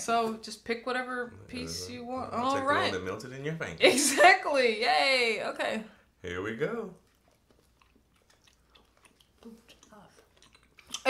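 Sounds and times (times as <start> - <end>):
chewing and wet mouth clicks: 7.0 - 11.0.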